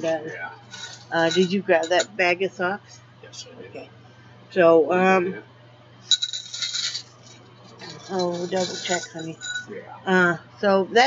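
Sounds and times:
small metal objects jingling: 0.7s - 2.2s, 6.1s - 9.7s.

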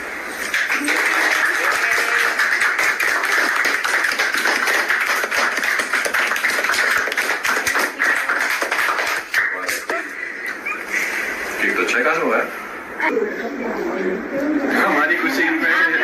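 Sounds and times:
many people clapping: 0.4s - 10.0s.

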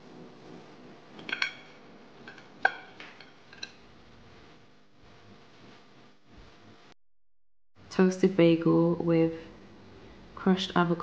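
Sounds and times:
utensils and dishes clattering: 1.2s - 3.8s.

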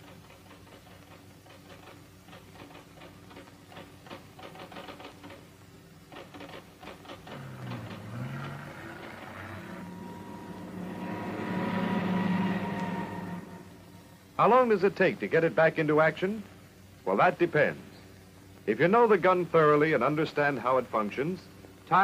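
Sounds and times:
motor hum with pitched tones: 7.2s - 14.4s.

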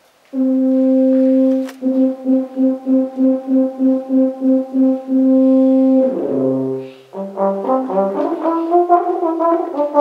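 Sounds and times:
tuba and euphonium ensemble: 0.3s - 10.0s.

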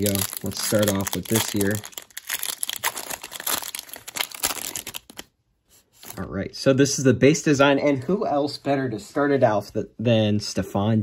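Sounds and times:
foil pack tearing and crinkling: 0.0s - 5.3s.

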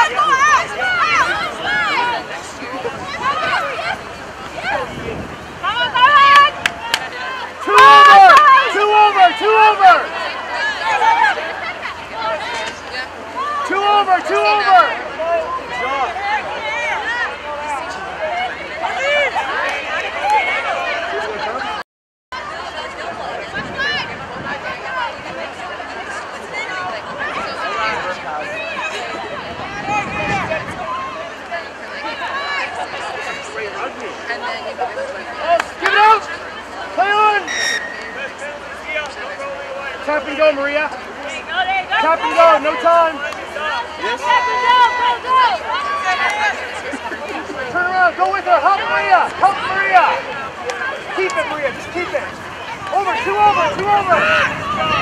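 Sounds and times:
outdoor background noise: 0.0s - 55.0s
voices shouting and calling out: 0.0s - 55.0s
women shouting calls: 5.6s - 11.4s
high whistle blast: 37.4s - 38.6s.

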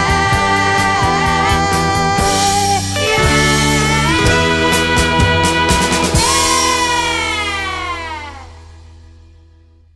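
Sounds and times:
pop song closing note: 1.2s - 8.8s.

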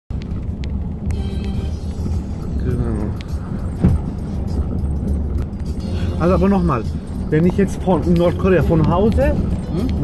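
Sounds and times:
road rumble inside car: 0.1s - 10.0s.

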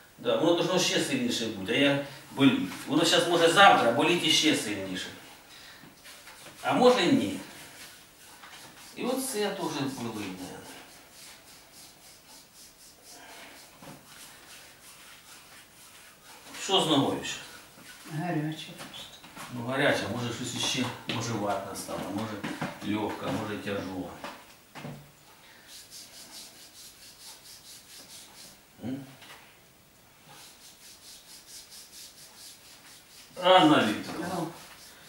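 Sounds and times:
hands rubbing bare skin: 5.9s - 24.4s, 25.6s - 28.7s, 30.2s - 35.0s.

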